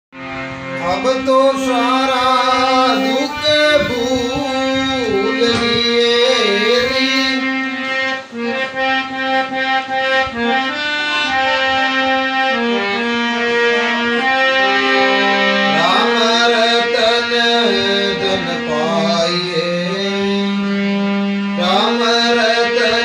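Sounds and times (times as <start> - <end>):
harmonium melody: 0.1 - 23.0.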